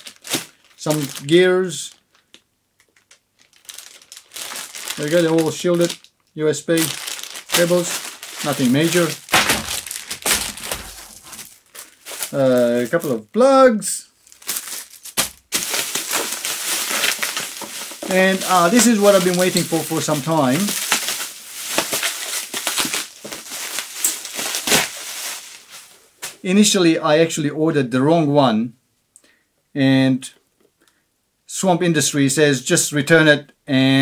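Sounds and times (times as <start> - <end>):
plastic bag crinkling: 0.0 - 13.4, 14.2 - 26.4.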